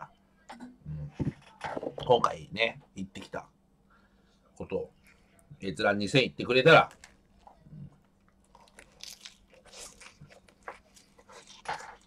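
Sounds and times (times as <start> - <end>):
man chewing crunchy greens: 6.9 - 12.0.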